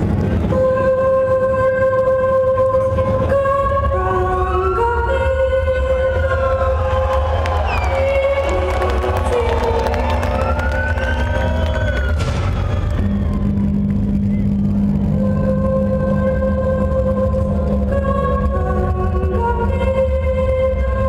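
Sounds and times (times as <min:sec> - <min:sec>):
deep low drone: 0:00.0 - 0:21.0
synthesized notes with pitch glides: 0:00.0 - 0:21.0.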